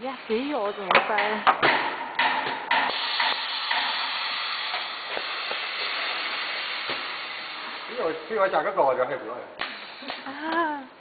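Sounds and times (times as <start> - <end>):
compressed air hissing: 2.8 - 8.6, 9.6 - 10.3.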